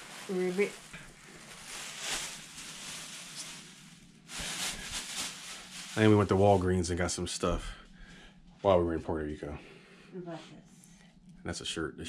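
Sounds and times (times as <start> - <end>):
plastic bag crinkling and rustling: 0.0 - 7.1.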